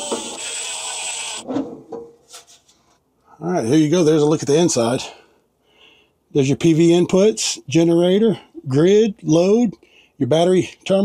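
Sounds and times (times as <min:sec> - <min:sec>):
cordless drill running: 0:00.0 - 0:01.4.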